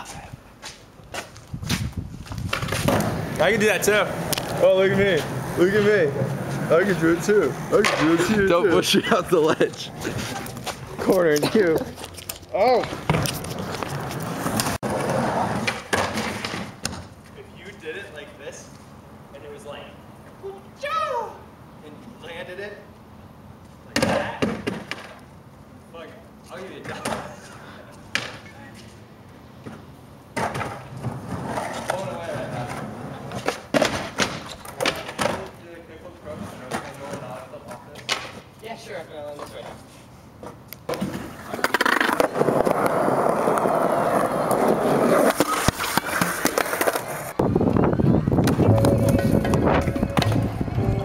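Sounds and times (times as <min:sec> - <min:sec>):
skateboard clacking on concrete: 0:02.4 - 0:04.6, 0:07.7 - 0:08.3, 0:30.4 - 0:35.6, 0:36.4 - 0:38.5, 0:40.5 - 0:47.4
loud continuous sound: 0:45.3 - 0:51.0.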